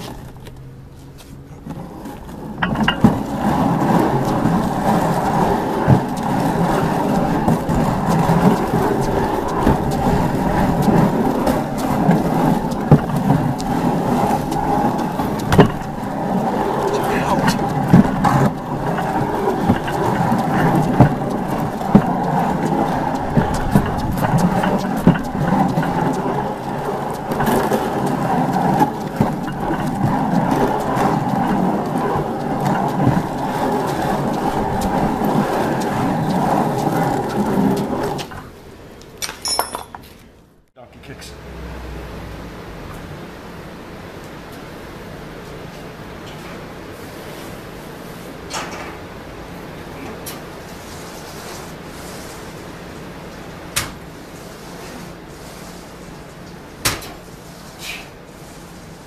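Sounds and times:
sled scraping on concrete: 0:00.0 - 0:40.3, 0:44.4 - 0:59.0
knocks and clatters: 0:01.6 - 0:40.2.

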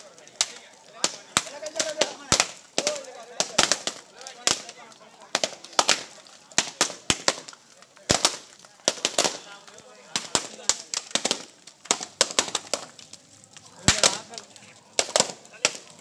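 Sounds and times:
coconuts cracking on road: 0:00.0 - 0:16.0.

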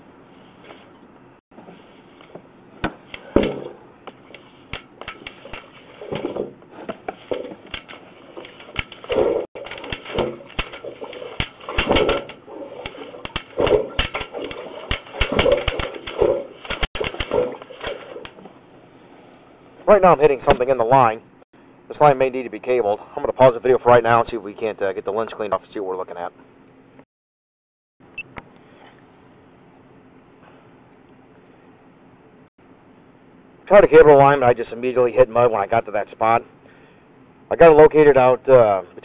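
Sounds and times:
cable clicks knocks and rattles: 0:03.2 - 0:18.5.

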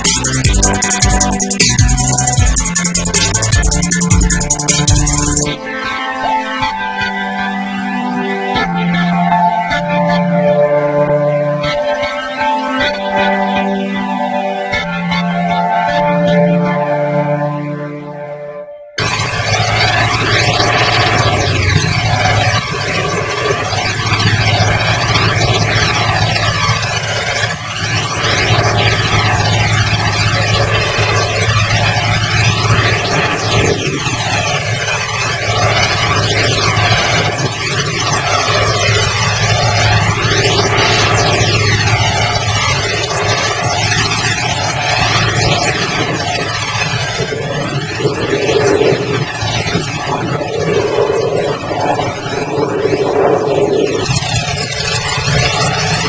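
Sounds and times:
heavy equipment engine drone: 0:00.0 - 0:56.0.

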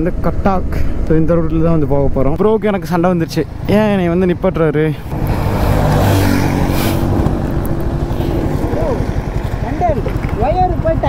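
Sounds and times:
vehicle passing: 0:04.8 - 0:11.0
motorcycle engine idling: 0:07.1 - 0:11.0.

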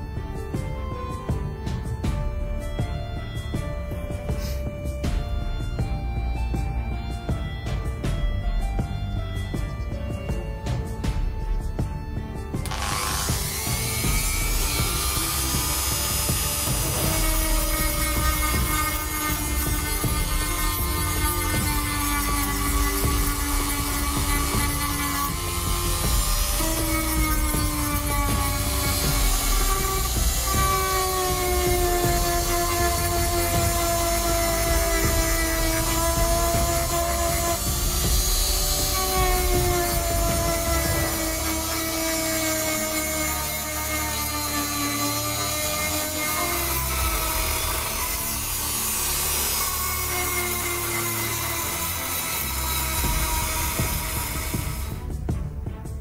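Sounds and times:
background music: 0:00.0 - 0:56.0
rotary tool grinding: 0:12.6 - 0:55.1.

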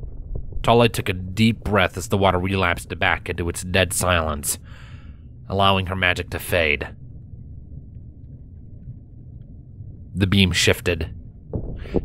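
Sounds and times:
low rumbling ambience: 0:00.0 - 0:12.0.

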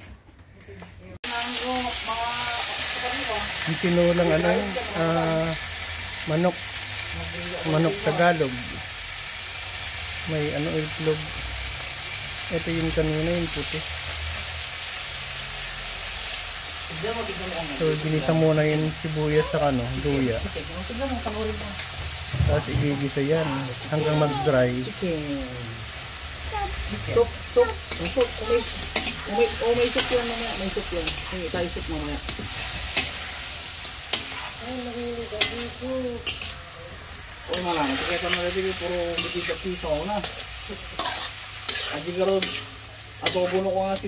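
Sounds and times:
chicken sizzling in a wok: 0:01.2 - 0:44.0.

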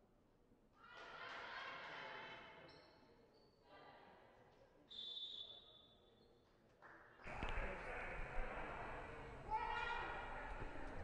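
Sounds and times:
crowd and hall noise: 0:05.9 - 0:11.0.

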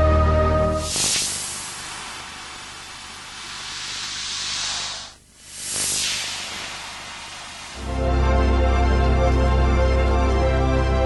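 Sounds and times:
loud hissing: 0:00.8 - 0:07.9.

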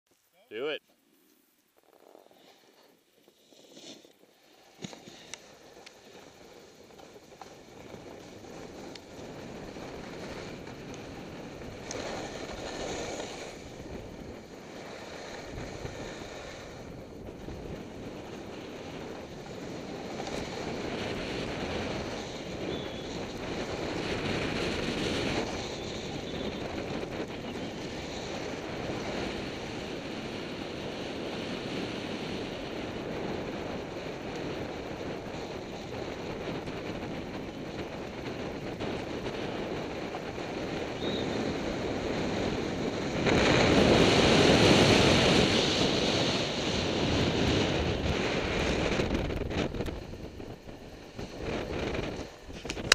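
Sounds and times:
skis scraping on packed snow: 0:01.8 - 0:52.9
wind rushing over microphone: 0:03.5 - 0:52.9.

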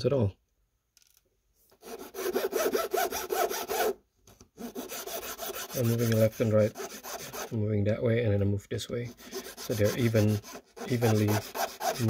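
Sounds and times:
metal file rasping: 0:01.8 - 0:04.0, 0:04.6 - 0:07.6, 0:09.1 - 0:12.0.

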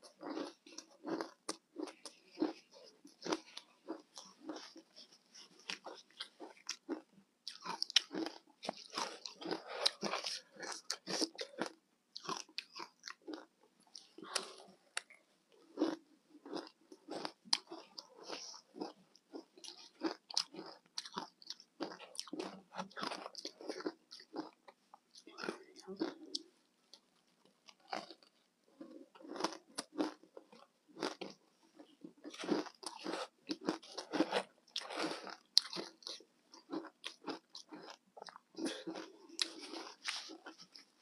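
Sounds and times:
crunching and chewing ice: 0:00.0 - 0:27.0, 0:27.6 - 0:41.0.

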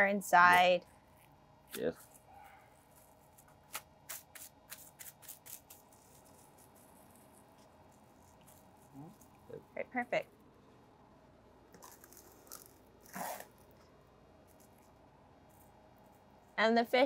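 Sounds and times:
plastic cling wrap crinkling: 0:11.7 - 0:13.8.

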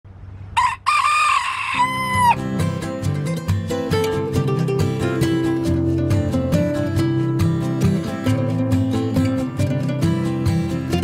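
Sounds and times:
rooster crowing: 0:00.6 - 0:02.4
acoustic guitar music: 0:01.8 - 0:11.0.

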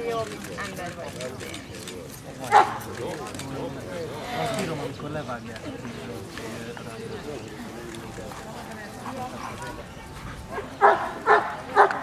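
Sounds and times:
people chattering: 0:00.0 - 0:12.0
dog barking: 0:10.5 - 0:12.0.

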